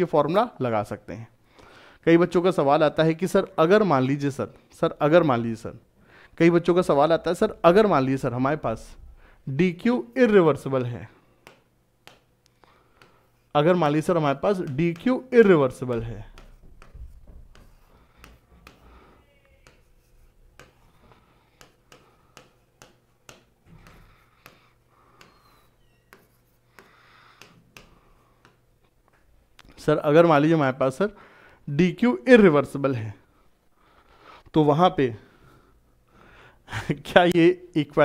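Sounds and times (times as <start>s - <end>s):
pen tip tapping on screen: 11.4s - 12.3s, 15.9s - 18.8s, 21.6s - 28.6s
pen stroke scratch: 15.9s - 18.8s, 19.6s - 23.0s, 25.2s - 26.9s.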